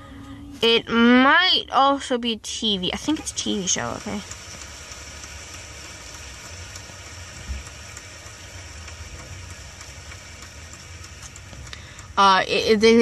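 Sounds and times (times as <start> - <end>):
car cabin rumble and hiss: 0.0 - 13.0.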